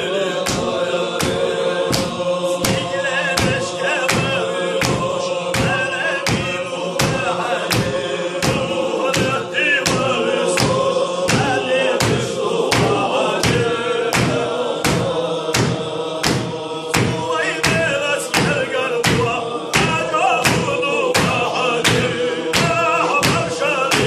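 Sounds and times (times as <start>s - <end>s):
men singing over drone: 0.0s - 24.0s
hand-claps: 0.4s - 24.0s.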